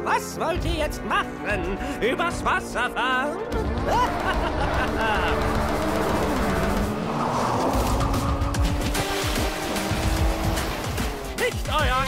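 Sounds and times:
cartoon soundtrack music: 0:00.0 - 0:12.0
race car engines: 0:03.6 - 0:11.7
rushing water spray: 0:08.7 - 0:11.0.

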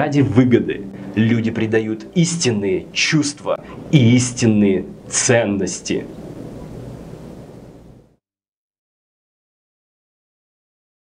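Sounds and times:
faint low hum: 0:00.0 - 0:08.2
steady rushing noise: 0:00.8 - 0:08.2.

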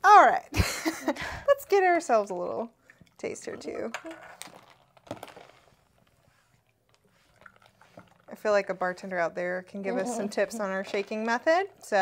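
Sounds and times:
faint liquid trickle: 0:02.0 - 0:04.2, 0:06.6 - 0:12.0.

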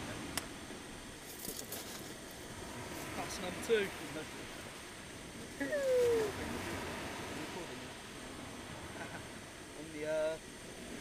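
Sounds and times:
surf on shingle beach: 0:00.0 - 0:11.0
wind: 0:00.0 - 0:11.0.

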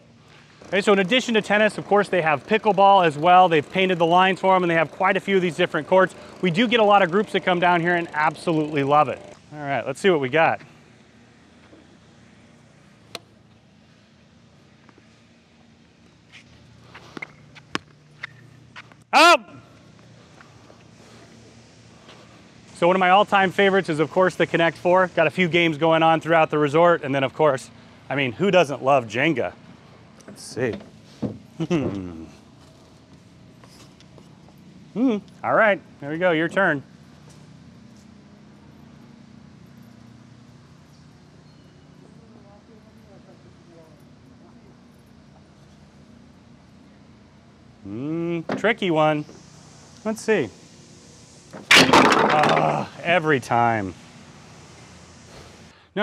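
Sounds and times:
shoes scuffing on court: 0:16.3 - 0:19.0
steady low hum: 0:42.0 - 0:56.0.

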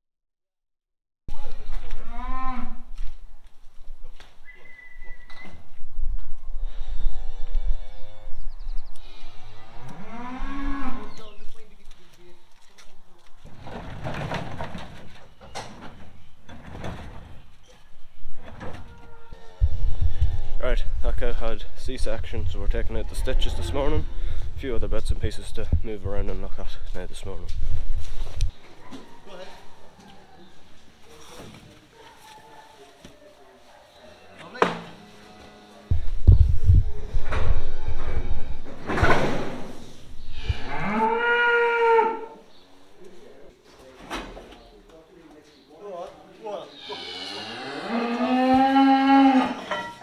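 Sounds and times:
cow mooing: 0:09.6 - 0:11.1, 0:40.4 - 0:42.4, 0:46.8 - 0:49.7
wind rumble on microphone: 0:19.6 - 0:28.5, 0:35.9 - 0:40.8.

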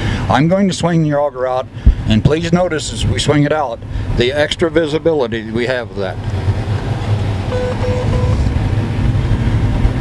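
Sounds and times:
combine harvester drone in cab: 0:00.0 - 0:10.0
short electronic beeps: 0:07.5 - 0:08.5.

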